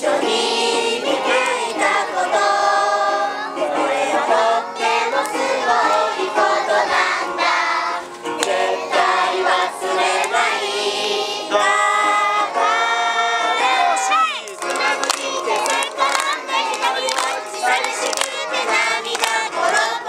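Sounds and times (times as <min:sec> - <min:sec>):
group singing with children: 0:00.0 - 0:20.0.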